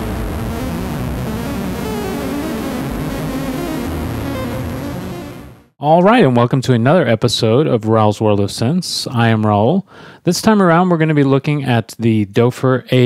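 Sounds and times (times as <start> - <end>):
theme music sustained tones: 0.1 - 5.7.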